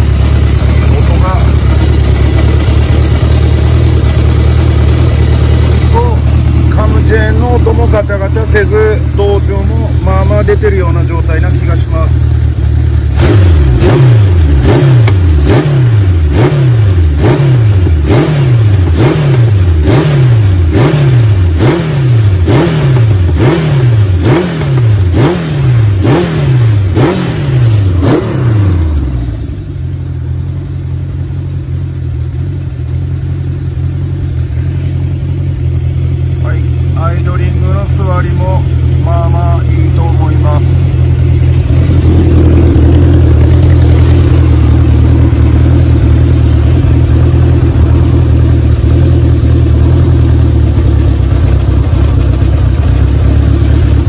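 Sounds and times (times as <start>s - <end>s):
motorcycle engine idling: 0.0s - 54.0s
motorcycle engine revving: 0.0s - 54.0s.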